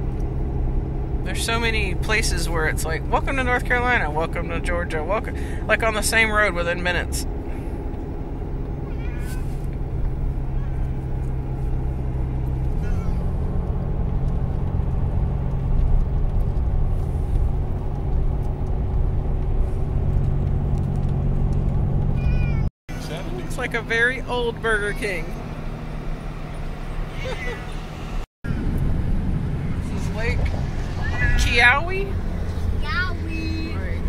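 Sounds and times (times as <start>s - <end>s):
vehicle engine and road noise: 0.0s - 34.0s.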